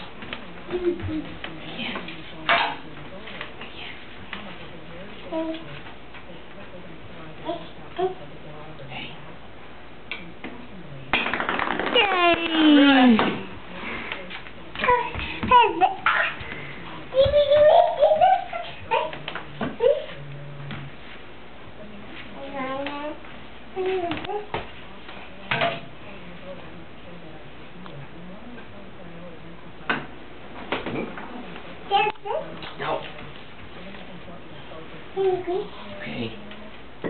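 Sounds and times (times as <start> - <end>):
faint low murmur: 0.0 - 37.0.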